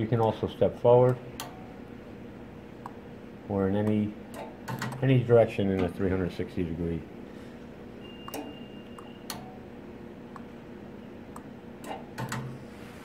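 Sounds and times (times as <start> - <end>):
machine low steady hum: 0.0 - 13.0.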